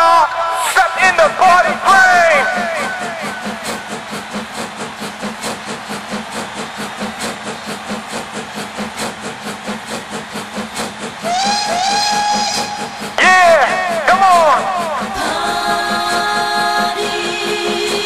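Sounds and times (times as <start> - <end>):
train chugging: 0.0 - 18.0
train whistle: 11.1 - 18.0.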